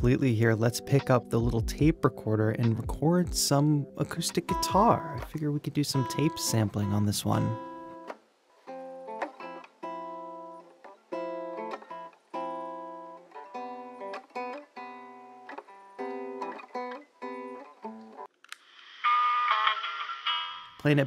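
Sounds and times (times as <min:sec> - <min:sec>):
acoustic guitar plucked notes: 0:00.0 - 0:08.2.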